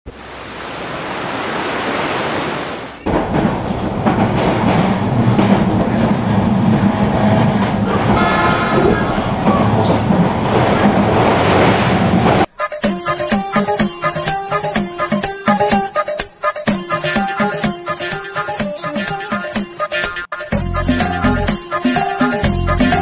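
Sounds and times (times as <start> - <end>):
passenger train rumbling and rattling: 3.0 - 12.5.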